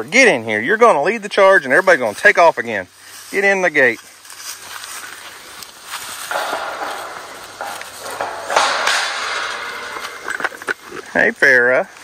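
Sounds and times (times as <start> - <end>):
footsteps crunching through dry leaves: 2.9 - 8.2.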